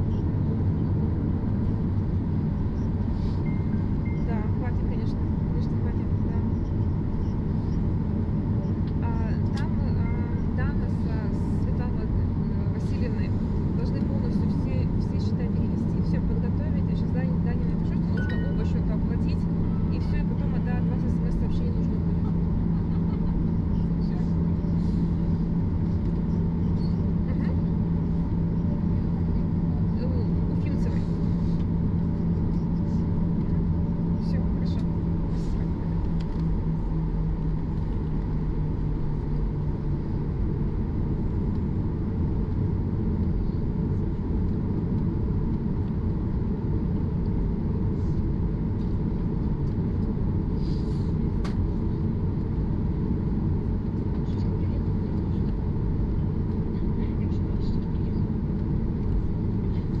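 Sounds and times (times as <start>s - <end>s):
airplane engines idling rumble: 0.0s - 60.0s
steady hum: 0.0s - 60.0s.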